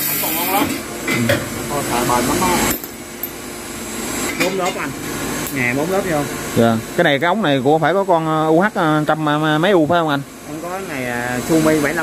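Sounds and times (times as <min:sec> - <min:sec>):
hose skiving machine hissing: 0:00.0 - 0:00.7
men talking: 0:00.1 - 0:02.8, 0:04.3 - 0:12.0.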